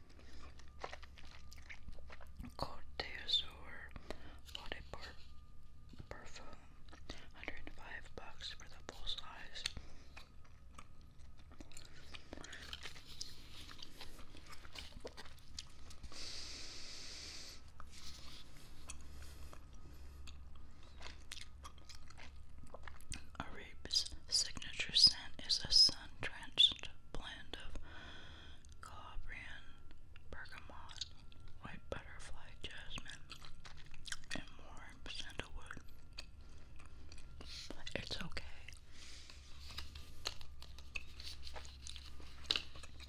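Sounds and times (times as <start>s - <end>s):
gum chewing mouth sounds: 0.1s - 3.6s, 6.2s - 24.9s, 30.2s - 31.6s, 32.4s - 43.0s
soft whispering: 2.4s - 10.0s, 12.1s - 14.8s, 23.4s - 27.8s, 28.8s - 33.3s, 34.3s - 35.9s, 37.4s - 39.9s.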